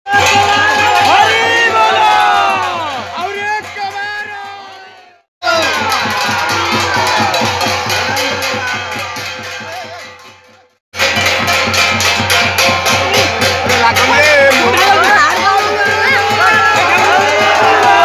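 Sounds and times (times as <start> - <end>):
crowd shouting: 0.1 - 10.3, 11.0 - 18.0
drums beating fast rhythm: 0.1 - 18.0.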